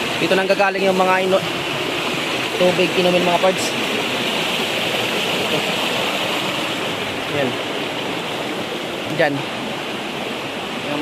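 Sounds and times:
creek rushing over rocks: 0.0 - 11.0.

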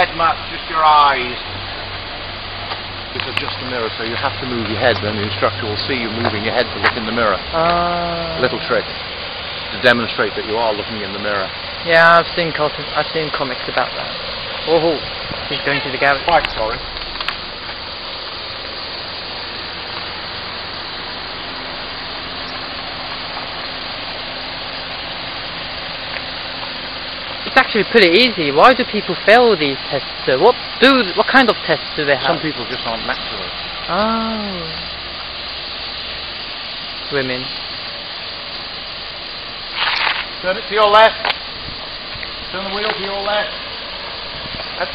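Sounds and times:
car engine idling: 0.0 - 44.9
steady hiss: 0.0 - 44.9.

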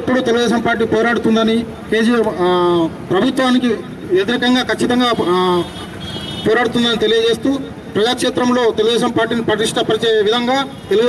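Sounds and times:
man speaking into microphone: 0.0 - 5.8, 6.4 - 11.0
steady background noise: 0.0 - 11.0.

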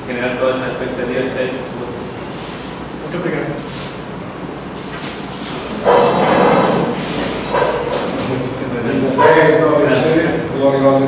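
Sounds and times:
chairs scraping: 4.8 - 8.5.

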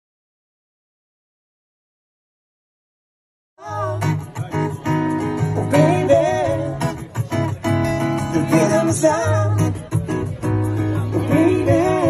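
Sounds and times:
person singing: 3.6 - 4.8, 5.5 - 7.4, 8.2 - 10.2, 10.9 - 12.0
strummed acoustic guitar: 3.6 - 12.0.

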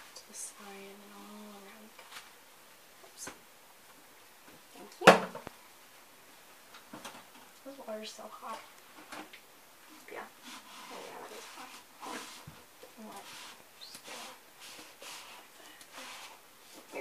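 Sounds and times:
sponge scrubbing a cup: 10.4 - 17.0.

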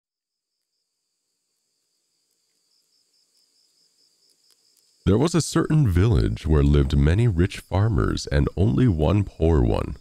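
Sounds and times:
crickets chirping: 0.2 - 10.0.

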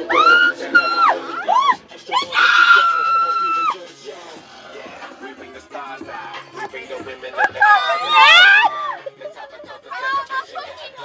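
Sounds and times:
woman screaming: 0.0 - 3.8, 7.4 - 9.0.

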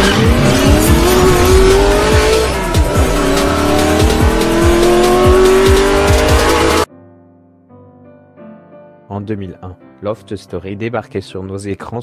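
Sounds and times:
electronic music: 0.0 - 6.9
race car engine revving: 0.0 - 6.9
bass drum beat: 0.2 - 6.9.

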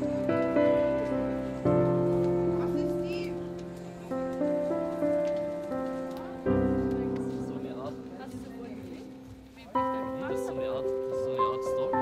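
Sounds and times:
slow piano melody: 0.0 - 12.0.

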